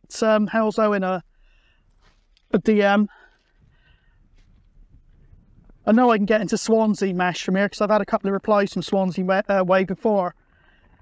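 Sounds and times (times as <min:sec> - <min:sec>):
faint breath: 0:01.3 - 0:02.4, 0:03.1 - 0:05.5, 0:10.4 - 0:11.0
low wind rumble on microphone: 0:04.2 - 0:05.9.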